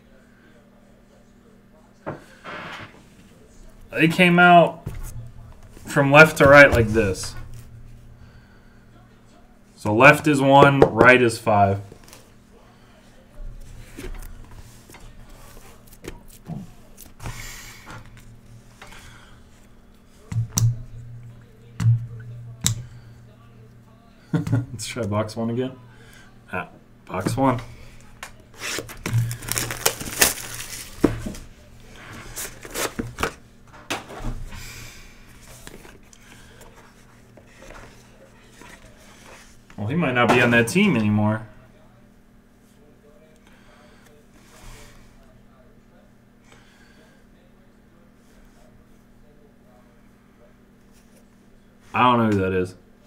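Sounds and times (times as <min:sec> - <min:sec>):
plastic wrap rustling: 0:28.2 - 0:33.4
cellophane tearing and crinkling: 0:28.5 - 0:31.5.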